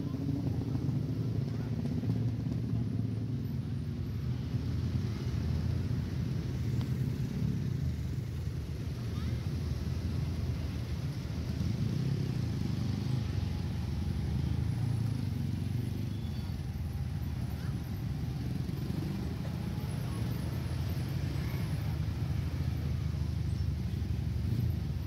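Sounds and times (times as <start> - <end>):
traffic engines rumbling: 0.0 - 25.0.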